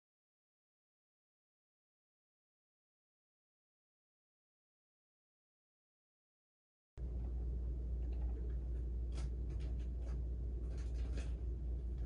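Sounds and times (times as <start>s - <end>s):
steady low hum: 7.0s - 12.0s.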